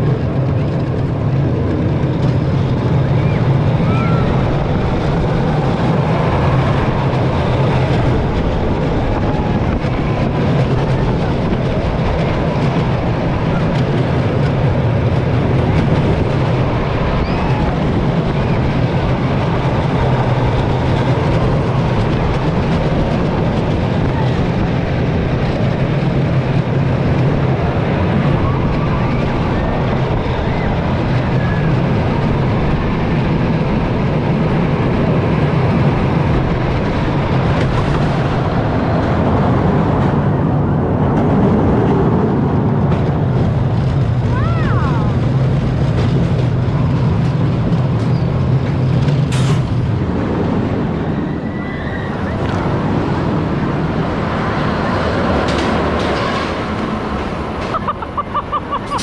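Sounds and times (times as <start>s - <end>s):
roller coaster rumbling on rails: 0.0s - 59.0s.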